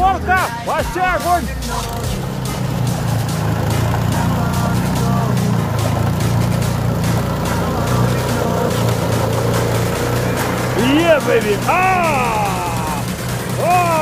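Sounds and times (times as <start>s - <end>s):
snowblower engine running: 0.0s - 14.0s.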